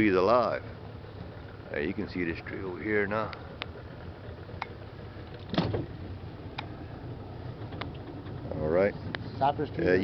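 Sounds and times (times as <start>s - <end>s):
boat motor humming: 0.0s - 10.0s.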